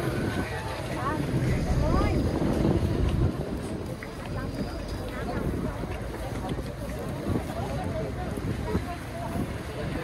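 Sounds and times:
scattered voices: 0.0 - 10.0
wind on microphone: 0.0 - 10.0.

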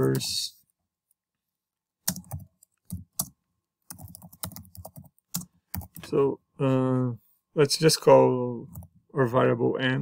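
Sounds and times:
keyboard typing: 2.0 - 6.2.

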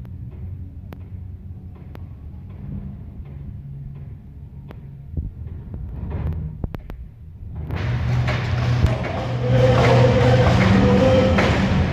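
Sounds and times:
car engines rumbling: 0.0 - 11.9.

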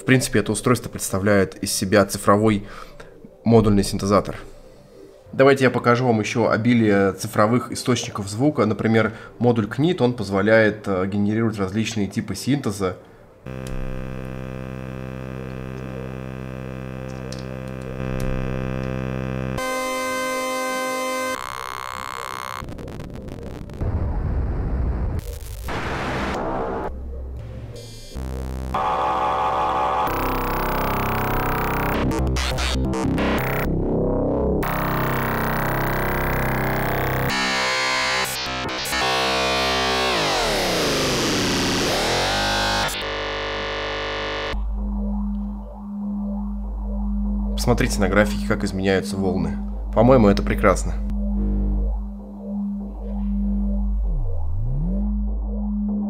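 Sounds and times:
synthesizer oscillator tones: 13.4 - 23.9, 25.2 - 56.0.

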